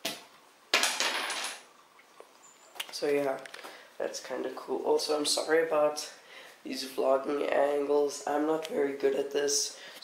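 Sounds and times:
wooden puzzle clattering: 0:00.7 - 0:01.6.

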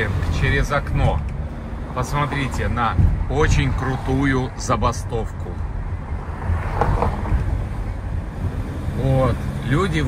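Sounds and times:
car driving slowly rumble: 0:00.0 - 0:10.0
wind buffeting microphone: 0:02.7 - 0:04.1.

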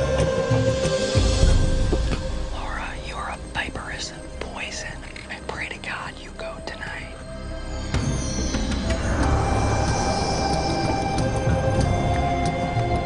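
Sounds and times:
background music: 0:00.0 - 0:13.0
person whispering: 0:02.5 - 0:07.3.

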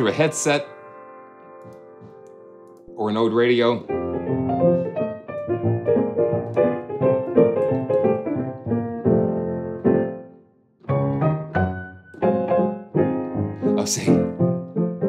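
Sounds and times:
piano playing jazzy chords: 0:00.0 - 0:15.0.

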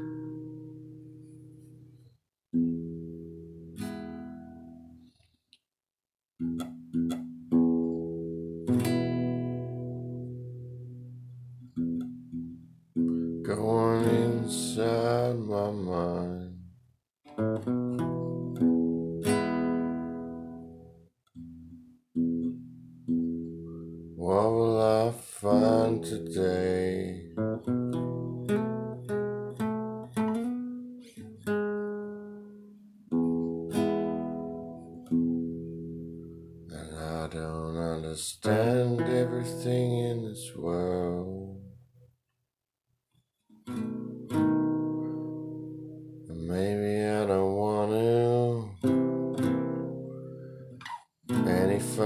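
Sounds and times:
strummed acoustic guitar: 0:00.0 - 0:05.0, 0:06.4 - 0:16.7, 0:17.3 - 0:41.8, 0:43.6 - 0:52.0
man singing: 0:13.4 - 0:16.7, 0:24.2 - 0:27.6, 0:36.7 - 0:41.7, 0:46.3 - 0:49.1, 0:51.3 - 0:52.0.

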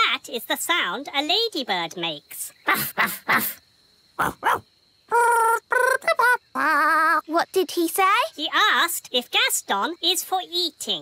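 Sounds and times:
cartoon alien gibberish voice: 0:02.6 - 0:03.6, 0:04.2 - 0:07.4.

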